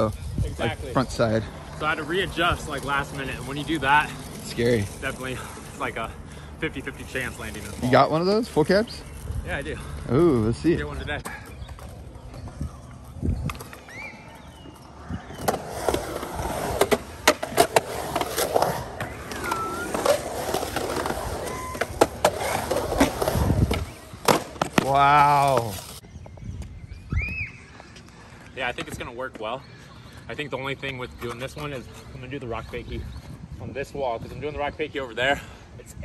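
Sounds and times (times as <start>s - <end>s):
skateboard wheels rolling on concrete: 0.0s - 36.0s.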